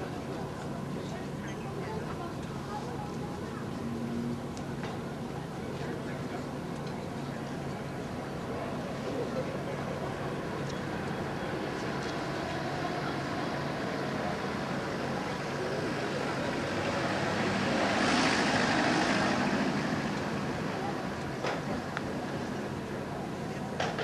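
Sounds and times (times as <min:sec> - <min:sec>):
crowd chatter: 0:00.0 - 0:24.0
street traffic: 0:00.0 - 0:24.0
vehicle passing close: 0:15.7 - 0:21.0.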